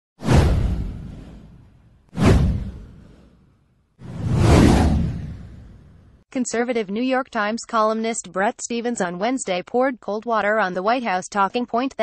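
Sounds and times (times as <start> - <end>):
whooshes: 0.2 - 6.2.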